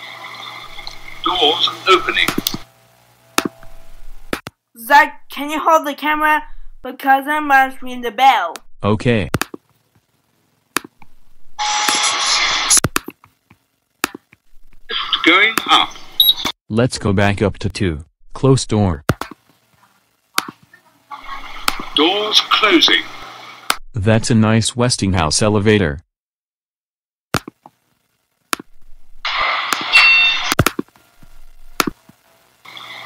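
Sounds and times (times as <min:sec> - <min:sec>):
sharp clicks: 0:09.3 - 0:09.6.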